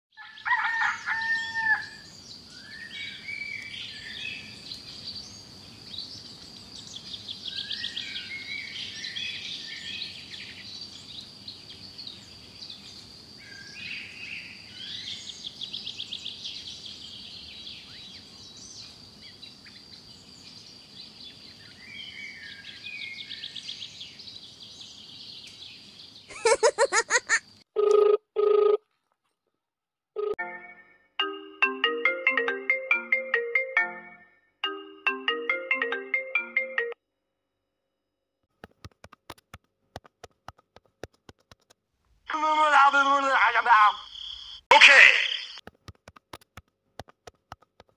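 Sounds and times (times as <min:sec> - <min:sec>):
birds chirping: 0:00.9 - 0:27.4, 0:42.3 - 0:45.6
electronic ringtone melody: 0:30.2 - 0:37.0.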